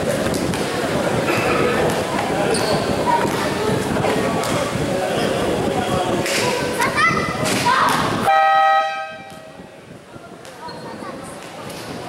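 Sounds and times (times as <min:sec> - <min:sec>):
basketball game horn: 0:08.2 - 0:09.4.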